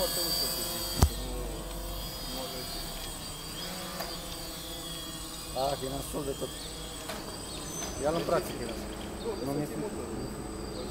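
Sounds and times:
drone rotors buzzing: 0.0 - 10.7
low thump: 1.0 - 1.3.

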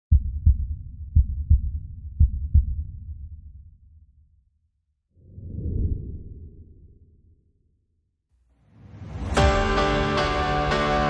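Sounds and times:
heartbeat thumps: 0.1 - 3.3
low rumble: 5.2 - 7.5.

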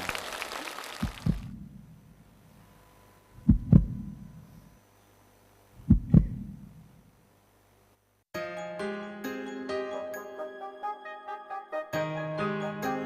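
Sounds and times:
faint low hum: 1.1 - 8.2
heartbeat double thumps: 1.2 - 1.7, 3.4 - 4.2, 5.8 - 6.7.

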